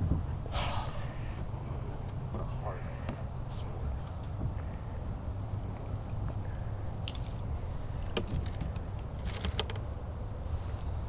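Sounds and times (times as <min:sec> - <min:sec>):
steady low rumble: 0:00.0 - 0:09.2.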